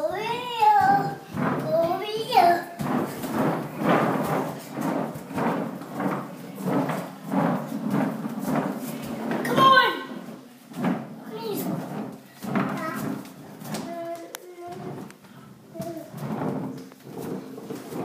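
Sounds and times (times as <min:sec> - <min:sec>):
skateboard wheels rolling on wood floor: 0:00.0 - 0:18.0.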